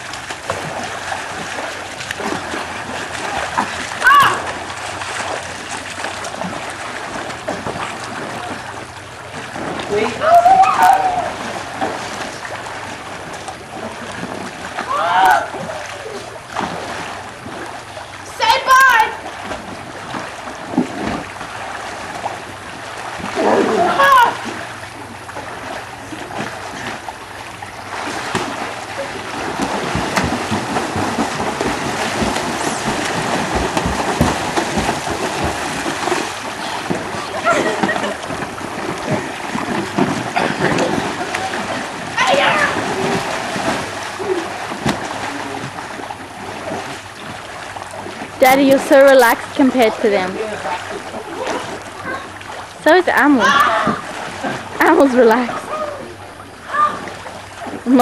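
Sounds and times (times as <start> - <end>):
water splashing in a pool: 0.0 - 58.0
people shouting: 4.0 - 4.6, 10.0 - 11.5, 14.9 - 16.2, 18.3 - 19.2, 23.4 - 24.4, 42.1 - 43.2, 53.4 - 54.1, 55.5 - 57.1.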